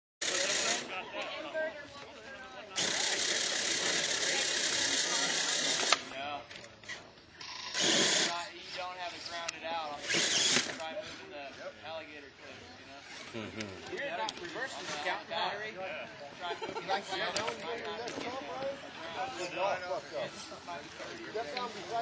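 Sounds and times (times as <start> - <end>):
rc car motor grinding: 0.2 - 0.9, 2.8 - 6.1, 6.8 - 11.2, 13.0 - 13.7, 14.4 - 15.2, 20.1 - 22.0
people talking faintly: 0.2 - 22.0.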